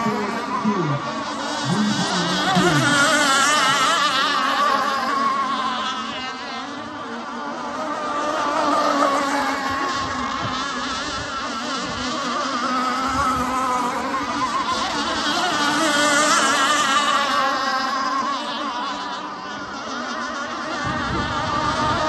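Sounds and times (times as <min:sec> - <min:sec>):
model boat motor high-pitched buzz: 0:00.0 - 0:22.0.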